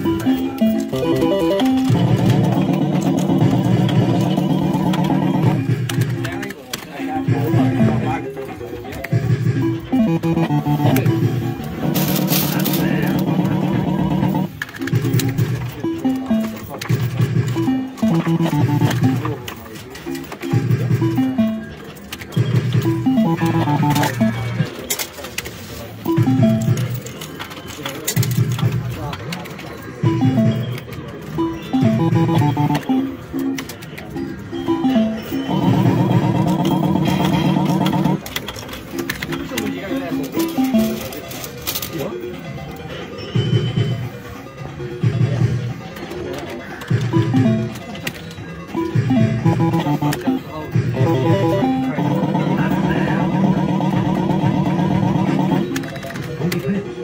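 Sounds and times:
held electronic notes: 0.0s - 3.5s, 9.6s - 11.5s, 17.6s - 19.4s, 21.0s - 21.8s, 22.8s - 24.4s, 30.1s - 33.2s, 48.8s - 55.7s
fruit machine beeping melodies: 0.0s - 5.7s, 7.3s - 8.3s, 9.6s - 11.6s, 15.8s - 19.5s, 20.7s - 24.7s, 26.1s - 27.0s, 30.0s - 33.5s, 34.1s - 38.2s, 39.3s - 41.2s, 47.1s - 55.9s.

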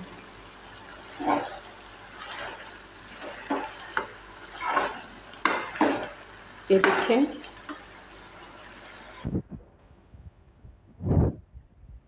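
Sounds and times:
vegetables sizzling in a pan: 0.0s - 9.3s.

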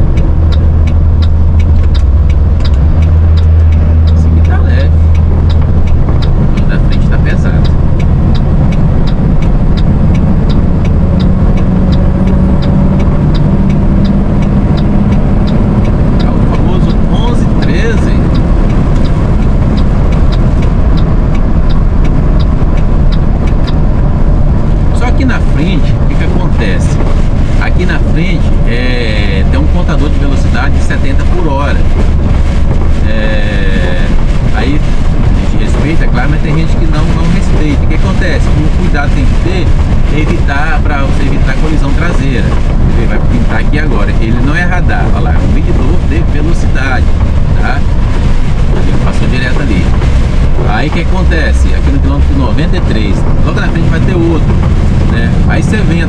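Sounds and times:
truck engine and tyre drone: 0.0s - 56.0s.

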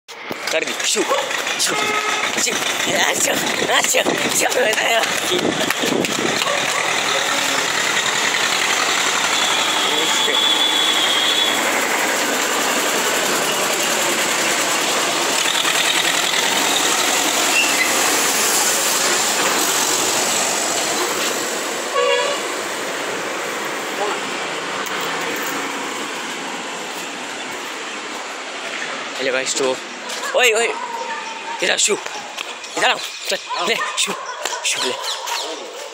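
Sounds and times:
street traffic noise: 0.1s - 35.9s
vehicle horn: 1.6s - 2.5s, 9.1s - 11.7s, 21.9s - 22.6s.

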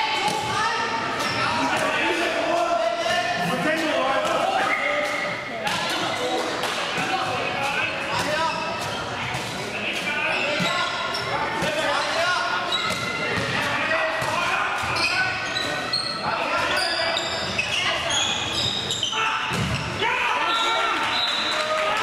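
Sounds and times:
sneakers squeaking on court: 0.3s - 1.9s, 8.1s - 20.0s.

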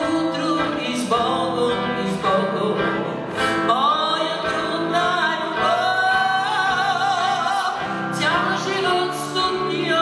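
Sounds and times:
acoustic guitar: 0.0s - 10.0s
woman singing: 0.0s - 10.0s.

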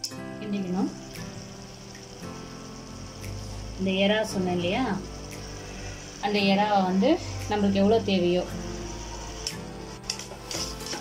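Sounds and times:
background music: 0.0s - 11.0s
ladle scraping a metal pot: 9.5s - 11.0s.

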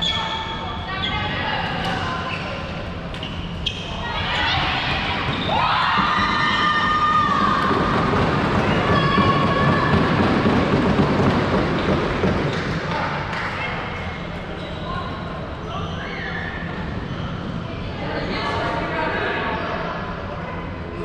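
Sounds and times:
players shouting: 4.0s - 12.4s
running feet: 4.7s - 13.2s.

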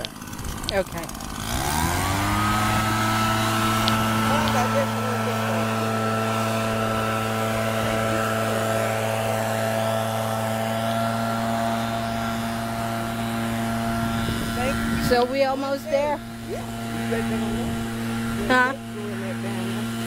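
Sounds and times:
machine hum: 0.0s - 20.0s.

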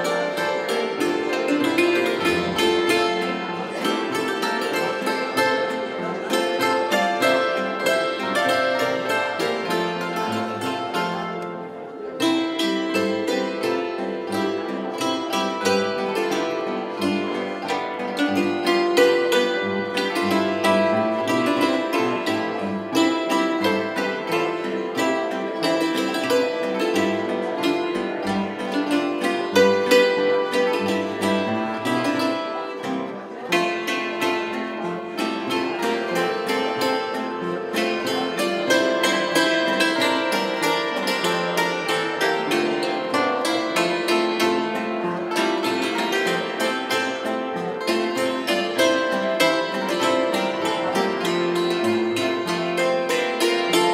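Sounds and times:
zithers and hammered dulcimer playing: 0.0s - 53.9s.

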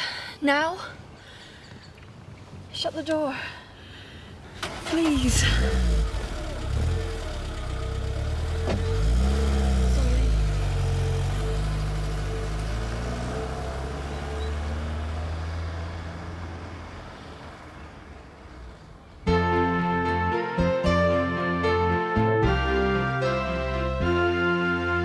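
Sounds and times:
car engine revving and driving off: 4.7s - 19.1s
car door shutting: 8.6s - 9.0s.

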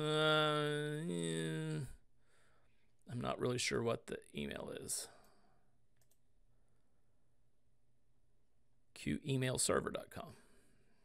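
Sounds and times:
faint clicks: 6.0s - 6.3s.

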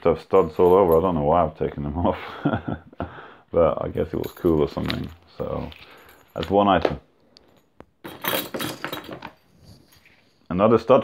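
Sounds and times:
metal studs and buckle jingling: 0.0s - 1.5s, 3.8s - 10.5s.

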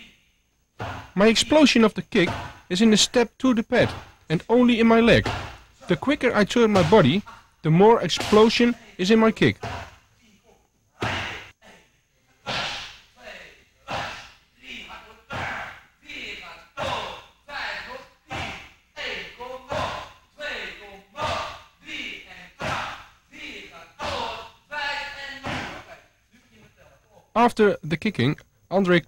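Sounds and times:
strikes slapping kick pads: 5.1s - 5.6s, 6.7s - 7.2s, 8.1s - 8.6s.

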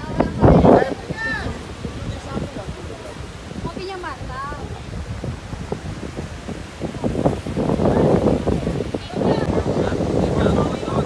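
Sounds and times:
surf breaking on beach: 0.0s - 11.0s
wind buffeting microphone: 0.0s - 11.0s.

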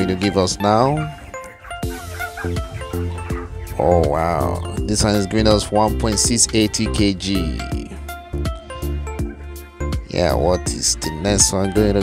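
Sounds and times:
instrumental background music: 0.0s - 12.0s
steady low bass: 1.8s - 12.0s.

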